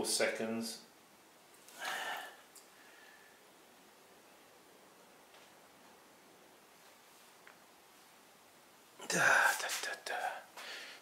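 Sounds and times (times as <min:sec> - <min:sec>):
man whispering: 0:09.0 - 0:10.6.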